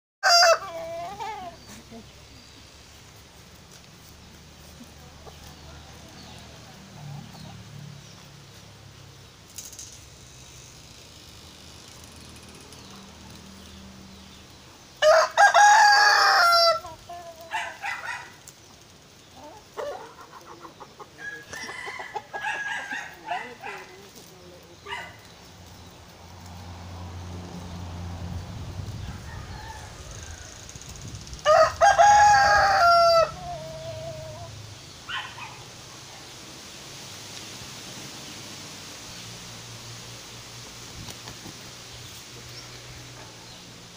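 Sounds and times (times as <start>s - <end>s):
rooster crowing: 0.2s - 1.7s, 15.0s - 18.4s, 21.2s - 23.9s, 28.9s - 34.6s
chickens clucking: 0.3s - 3.0s, 4.0s - 8.3s, 16.6s - 25.8s, 32.2s - 36.3s.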